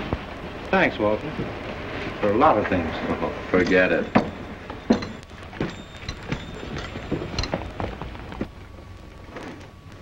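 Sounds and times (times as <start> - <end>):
film soundtrack hiss and crackle: 0.0 - 10.0.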